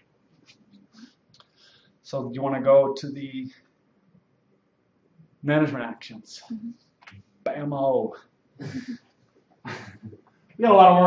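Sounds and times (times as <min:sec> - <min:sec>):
man laughing breathily: 0:08.6 - 0:09.0, 0:09.6 - 0:10.2.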